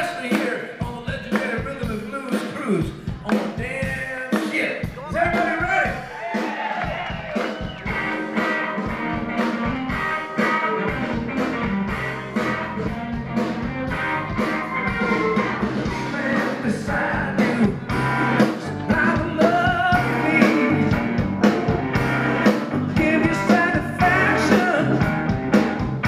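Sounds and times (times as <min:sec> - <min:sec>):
blues-rock band playing: 0:00.0 - 0:26.0
steady drum beat: 0:00.0 - 0:26.0
electric guitar: 0:07.0 - 0:26.0
person singing: 0:14.3 - 0:25.2.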